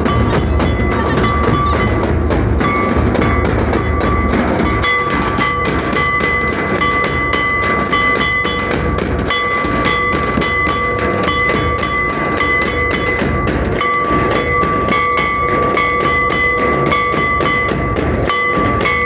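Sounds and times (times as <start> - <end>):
drums beaten with sticks: 0.0 - 19.0.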